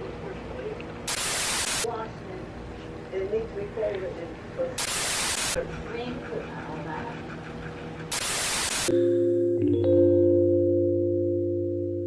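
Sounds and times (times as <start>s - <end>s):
tv static hiss: 1.0s - 2.0s, 4.6s - 5.6s, 8.1s - 8.9s.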